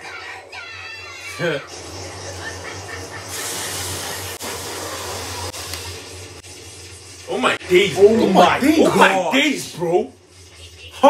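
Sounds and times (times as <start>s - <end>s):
steady rushing hiss: 1.6s - 10.4s.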